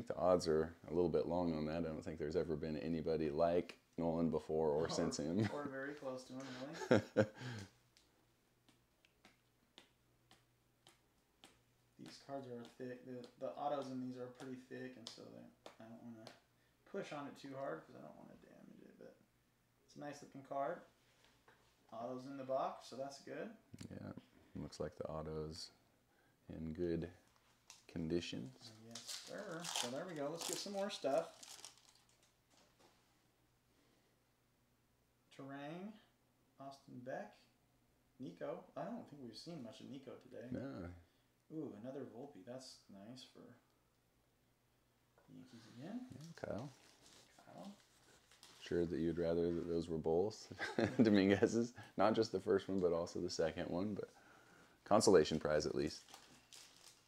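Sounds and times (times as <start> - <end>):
trading cards rustling: 28.6 - 33.0, 46.1 - 49.7, 55.9 - 57.0.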